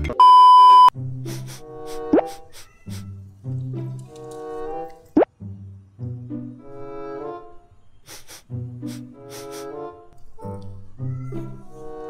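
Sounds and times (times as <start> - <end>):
loud steady beep: 0.2 - 0.9
background music: 0.9 - 12.0.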